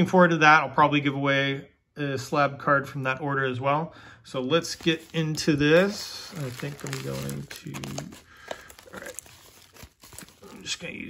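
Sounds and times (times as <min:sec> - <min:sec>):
tissue paper crinkling: 0:04.6 - 0:11.0.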